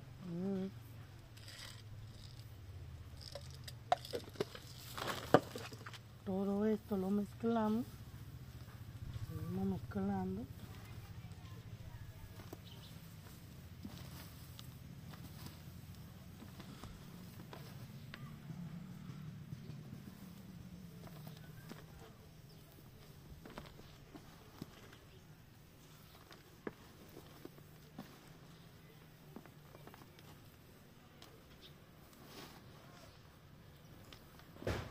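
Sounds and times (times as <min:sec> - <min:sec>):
low steady hum: 0:00.0 - 0:34.8
hands rustling and scraping soil: 0:00.2 - 0:34.9.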